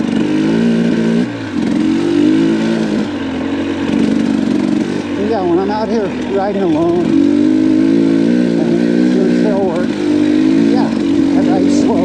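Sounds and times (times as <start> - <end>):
dirt bike engine running: 0.0 - 12.0.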